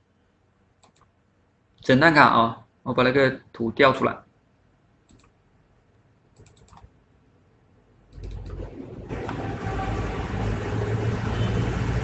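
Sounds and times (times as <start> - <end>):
computer mouse clicks: 0.8 - 1.1, 5.0 - 5.4, 6.3 - 7.0, 8.1 - 8.7.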